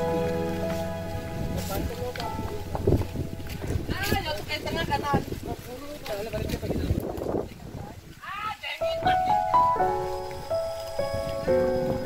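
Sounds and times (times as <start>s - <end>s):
wind rumble on microphone: 0.0s - 9.5s, 10.2s - 12.0s.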